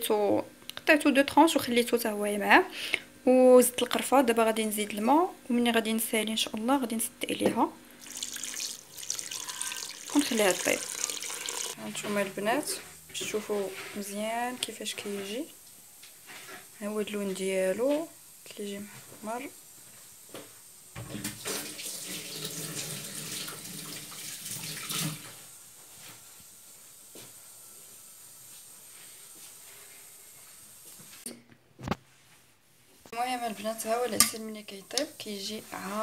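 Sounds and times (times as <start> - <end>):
water pouring into metal pot: 8.0 - 11.8, 21.4 - 25.2.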